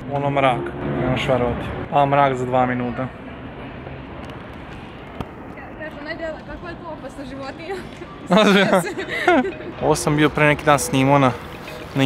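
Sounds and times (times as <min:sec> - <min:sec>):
urban background noise: 0:00.0 - 0:12.0.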